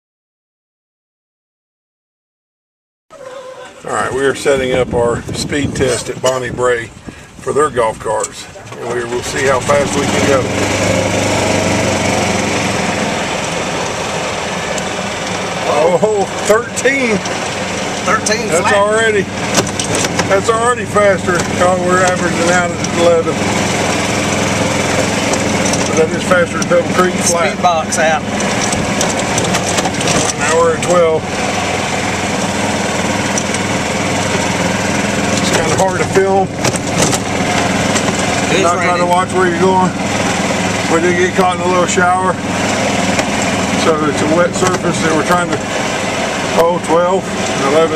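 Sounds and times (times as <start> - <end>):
golf cart engine accelerating: 3.1 - 47.9
wind and tyre noise: 3.1 - 47.9.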